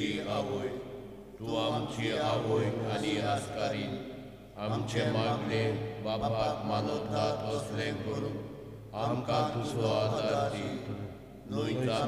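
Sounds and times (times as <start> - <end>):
voices reciting prayer: 0.0 - 12.0.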